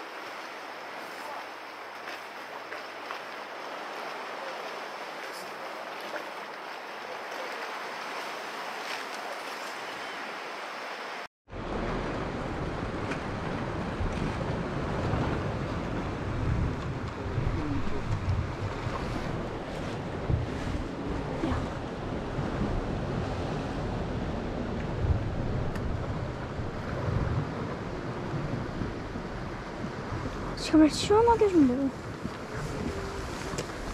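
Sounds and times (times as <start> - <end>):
sea waves on rocky shore: 0.0 - 33.9
wind buffeting microphone: 11.5 - 33.9.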